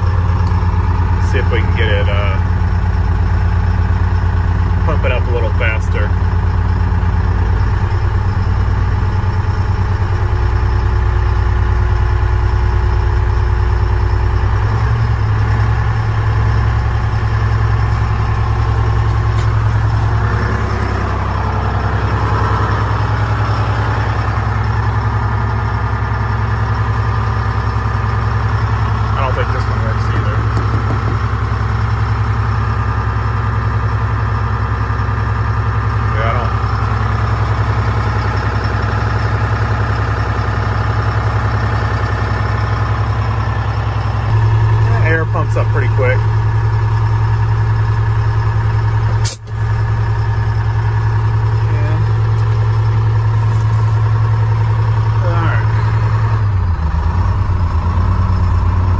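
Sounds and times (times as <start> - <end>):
diesel engine idling: 0.0 - 58.9.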